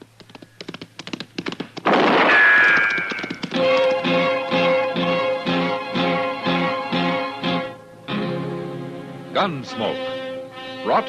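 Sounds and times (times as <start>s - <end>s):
loud crash: 1.9s - 3.8s
knocks and clicks: 2.6s - 4.1s.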